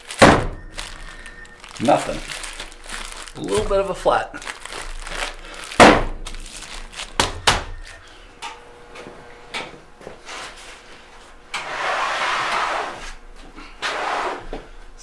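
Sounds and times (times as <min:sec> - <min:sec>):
plastic bag rustling: 0:00.0 - 0:08.2.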